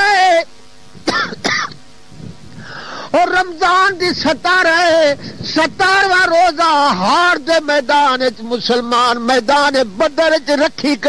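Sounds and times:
faint breathy hiss: 0:01.0 - 0:03.2, 0:05.1 - 0:05.6.

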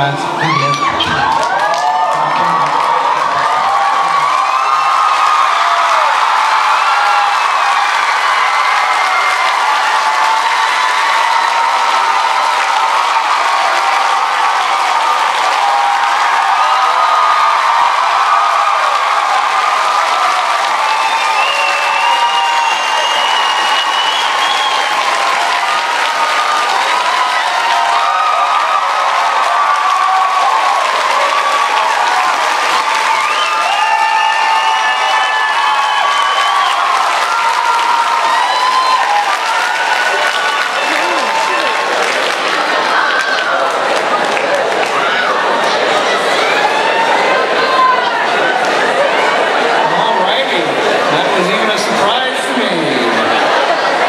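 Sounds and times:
audience applauding: 0:00.0 - 0:54.0
audience whooping and shouting: 0:00.0 - 0:54.0.

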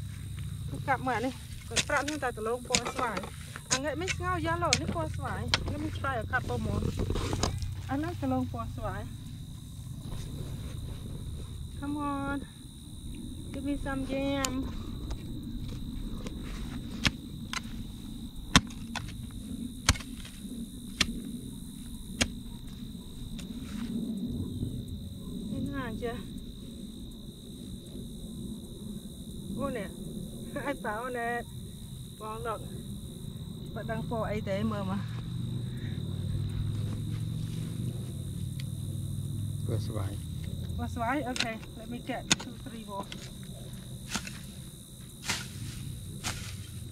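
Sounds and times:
hoe scraping through dirt: 0:00.8 - 0:07.9, 0:42.3 - 0:46.9
hoe chopping into dry soil: 0:01.2 - 0:07.8, 0:18.5 - 0:21.3, 0:42.3 - 0:46.9.

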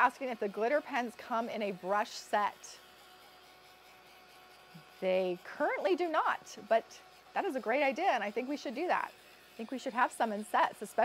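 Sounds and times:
faint heat tool hum: 0:00.0 - 0:11.0.

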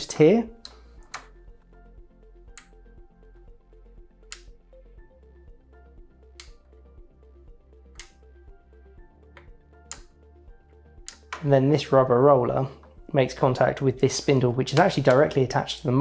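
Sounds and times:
soft background music: 0:00.0 - 0:16.0
selector knob clicks: 0:08.0 - 0:08.2.

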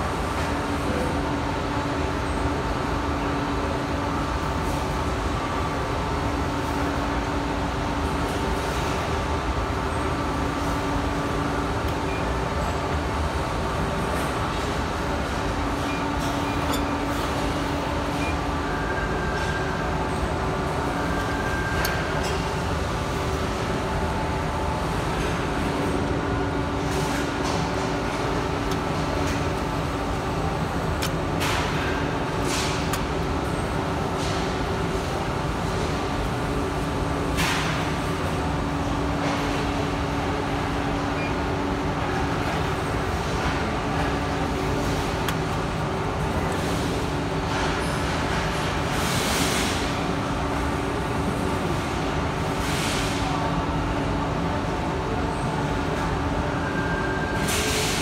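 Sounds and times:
press brake machine hum: 0:00.0 - 0:52.5.

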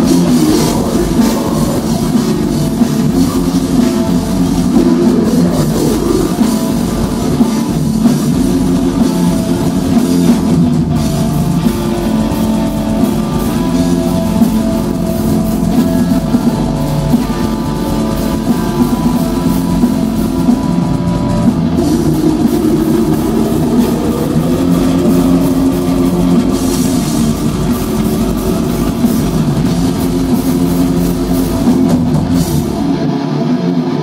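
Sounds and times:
bass guitar: 0:00.0 - 0:34.0
distorted electric guitars: 0:00.0 - 0:34.0
fast drum kit: 0:00.0 - 0:34.0.

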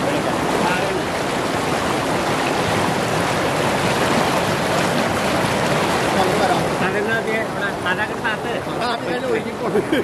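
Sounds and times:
river rapids rushing over rocks: 0:00.0 - 0:08.8.

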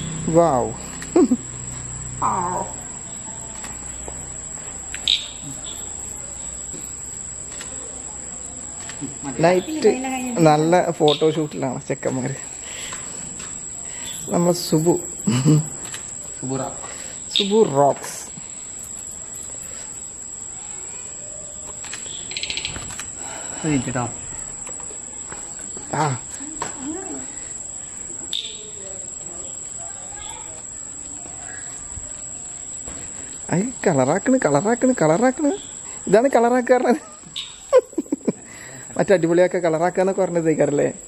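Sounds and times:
rapid chirps: 0:00.0 - 0:11.8, 0:12.5 - 0:23.8, 0:27.4 - 0:30.5, 0:31.4 - 0:39.2
crickets trilling: 0:00.0 - 0:41.0
high-pitched voice-like calls: 0:02.2 - 0:03.1, 0:37.0 - 0:37.8.

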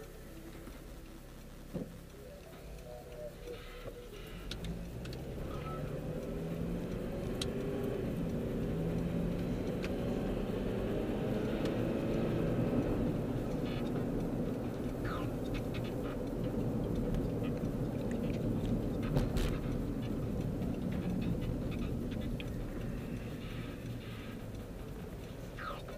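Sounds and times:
car engine: 0:00.0 - 0:25.9
faint clicks: 0:00.0 - 0:25.9
road noise inside car: 0:00.0 - 0:25.9.

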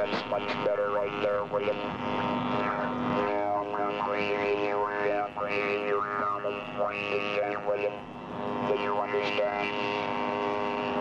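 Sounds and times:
robotic voice: 0:00.0 - 0:08.0, 0:08.6 - 0:10.1
electronic buzzing drone of tones: 0:00.0 - 0:11.0.

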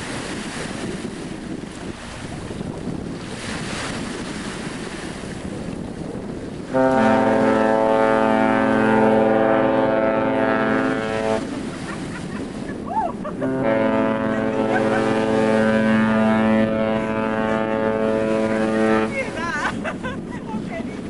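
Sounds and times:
wind buffeting microphone: 0:00.0 - 0:21.0
ship's horn long blast: 0:06.6 - 0:19.4.

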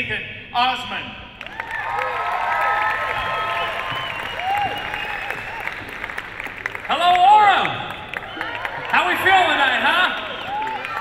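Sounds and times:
audience applauding and cheering: 0:01.4 - 0:11.0
shouts and whistles: 0:02.8 - 0:05.8.

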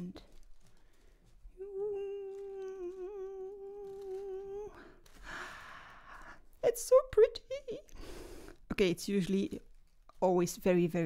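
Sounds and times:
woman humming a long note: 0:01.6 - 0:05.0.

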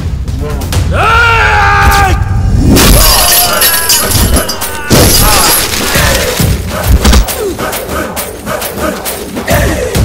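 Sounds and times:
loud smash with shattering: 0:02.8 - 0:06.4.

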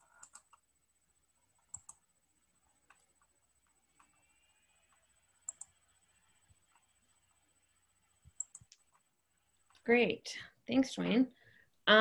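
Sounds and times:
computer keyboard clicks: 0:00.0 - 0:00.6, 0:01.6 - 0:02.0, 0:05.4 - 0:05.7, 0:08.3 - 0:09.0.

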